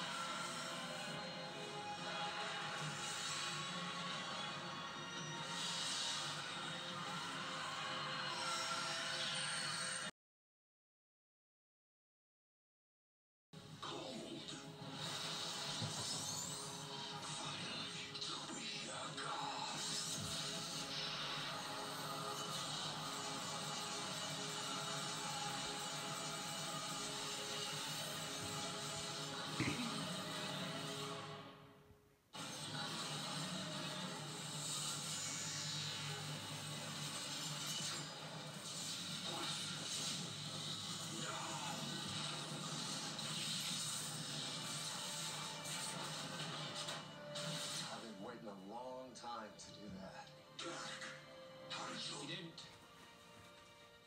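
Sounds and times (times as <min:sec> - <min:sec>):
television music: 0:00.0 - 0:10.2, 0:13.6 - 0:54.0.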